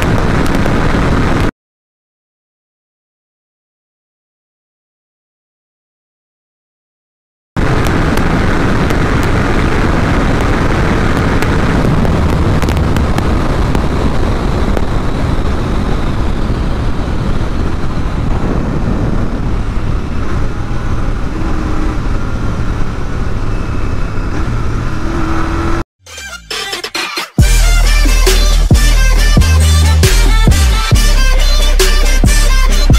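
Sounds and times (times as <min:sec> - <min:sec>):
wind rush on microphone: 0:00.0 - 0:01.5, 0:07.6 - 0:25.8
motorcycle engine at high speed: 0:07.6 - 0:25.8.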